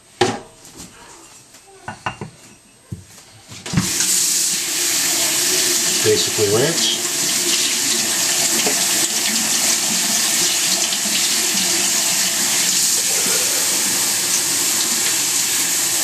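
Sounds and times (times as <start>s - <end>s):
faucet running into metal sink: 3.8s - 16.0s.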